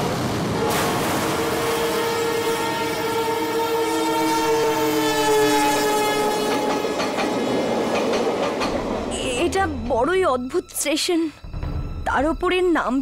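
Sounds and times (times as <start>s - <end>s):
train horn chord: 0.0s - 7.2s
train running noise: 0.0s - 13.0s
wheels clacking over rail joints: 6.4s - 10.0s.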